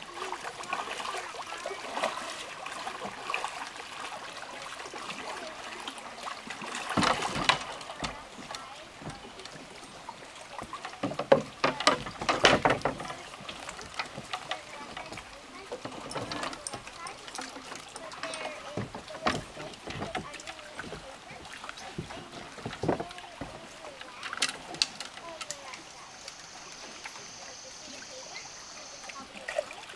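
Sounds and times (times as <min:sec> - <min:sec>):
kayak paddle splashing in water: 0:00.0 - 0:29.9.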